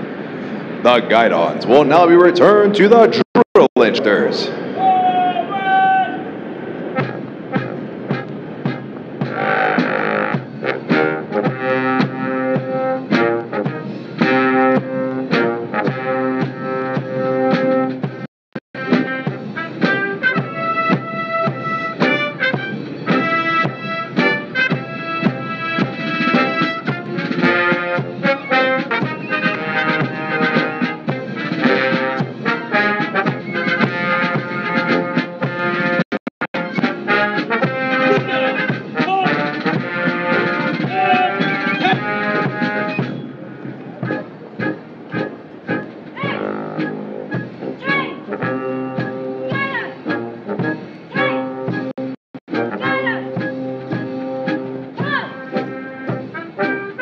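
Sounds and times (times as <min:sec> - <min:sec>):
military brass band playing: 0:06.8 - 0:36.0, 0:36.6 - 0:43.2, 0:44.0 - 0:57.0.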